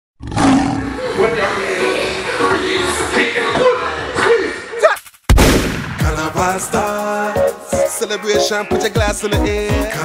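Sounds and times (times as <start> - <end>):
lion roar: 0.2 - 1.2.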